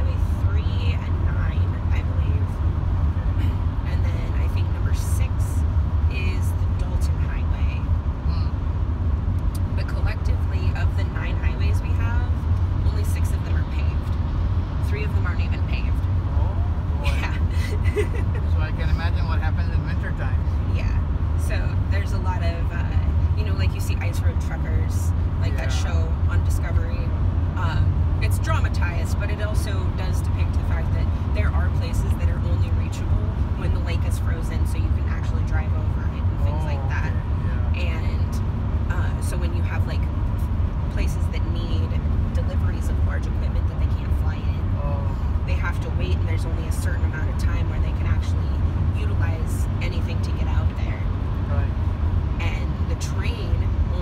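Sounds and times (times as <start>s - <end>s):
engine and tyre rumble in car cabin: 0.0s - 54.0s.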